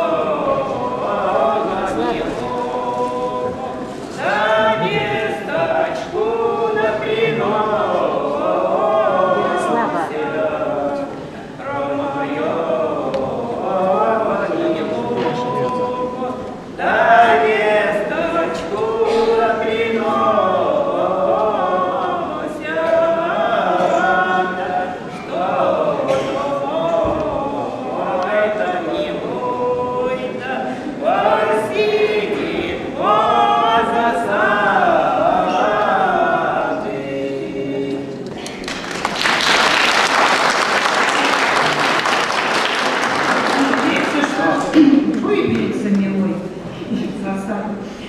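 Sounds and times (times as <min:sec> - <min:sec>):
woman and man singing together: 0:00.0 - 0:39.0.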